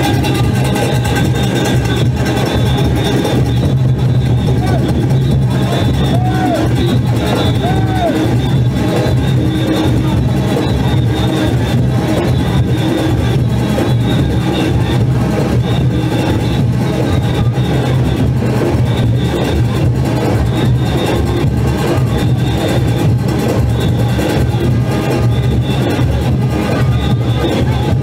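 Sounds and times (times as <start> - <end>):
cowbells: 0.0 - 28.0
driving drumming: 0.0 - 28.0
steady low drone: 0.0 - 28.0.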